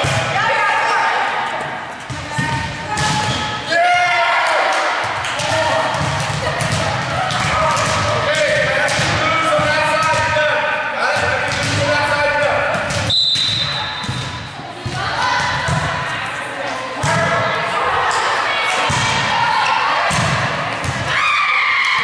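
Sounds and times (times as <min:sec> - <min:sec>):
volleyballs hit and bouncing: 0:00.0 - 0:00.5, 0:01.6 - 0:22.0
players calling and chattering: 0:00.0 - 0:22.0.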